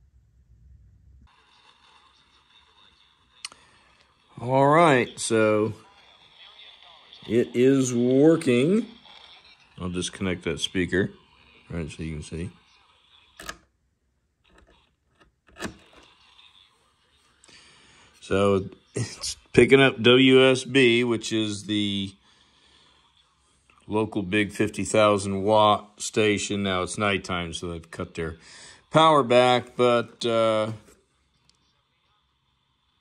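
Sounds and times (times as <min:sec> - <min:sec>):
radio speaker hiss: 0:01.2 - 0:13.6, 0:15.6 - 0:33.0
clip leads clicking and scraping: 0:13.4 - 0:13.7, 0:14.5 - 0:16.1.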